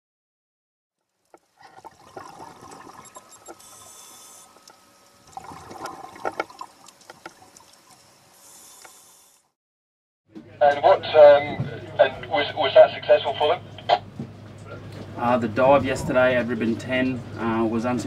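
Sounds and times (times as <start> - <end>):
bubbling regulator exhalation: 1.5 - 4.7, 5.3 - 7.6
hissing regulator inhalation: 1.7 - 4.7, 8.3 - 9.5.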